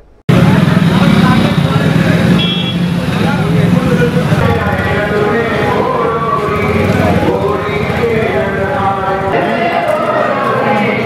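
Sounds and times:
many overlapping voices: 0.0 - 11.0
traffic noise: 0.0 - 11.0.

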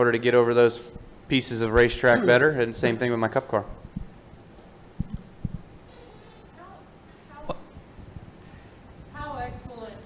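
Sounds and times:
soft low thumps: 3.8 - 4.3, 4.9 - 5.7, 7.6 - 9.8.

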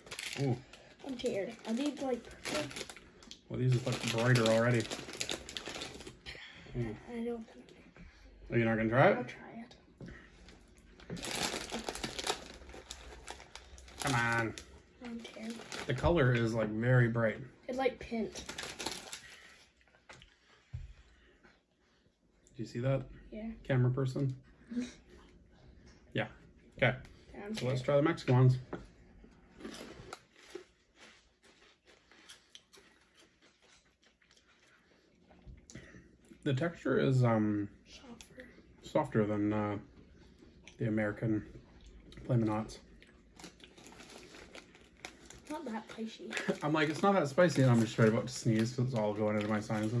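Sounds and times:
plastic chip bag crinkling: 0.0 - 6.2, 11.0 - 16.6, 18.3 - 19.6, 29.6 - 34.7, 43.3 - 50.0
chips crunching while chewed: 43.0 - 50.0.

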